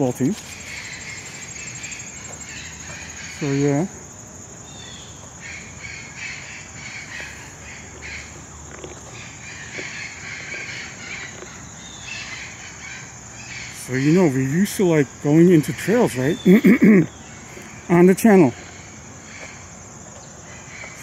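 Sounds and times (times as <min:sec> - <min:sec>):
birds calling: 0:00.0 - 0:21.0
high insect trill: 0:00.0 - 0:21.0.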